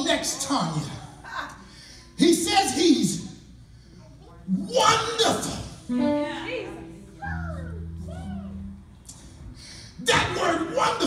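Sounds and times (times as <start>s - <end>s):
steady low hum: 0.6s - 11.0s.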